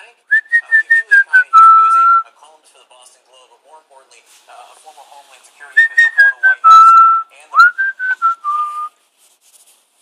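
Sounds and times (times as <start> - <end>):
person whistling a tune: 0.3 - 2.3, 5.7 - 8.9.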